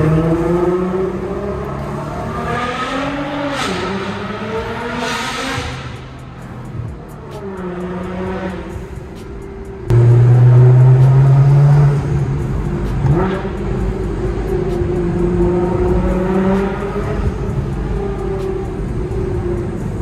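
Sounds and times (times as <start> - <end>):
car engine accelerating: 0.0 - 20.0.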